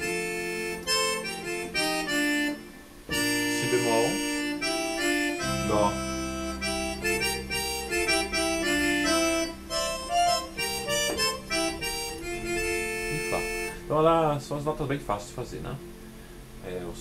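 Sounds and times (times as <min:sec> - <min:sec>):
keyboard accordion melody: 0:00.0 - 0:16.5.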